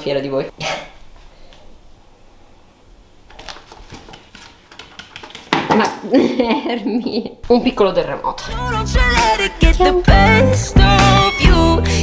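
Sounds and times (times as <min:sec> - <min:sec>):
cat paws tapping on wood: 0:03.4 - 0:05.8.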